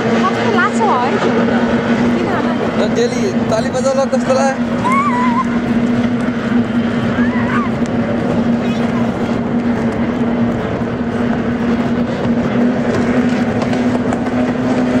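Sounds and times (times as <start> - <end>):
racing outboard motors: 0.0 - 15.0.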